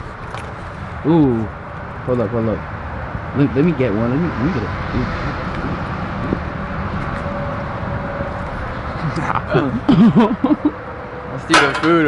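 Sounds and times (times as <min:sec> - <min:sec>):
road traffic hiss: 0:00.0 - 0:12.0.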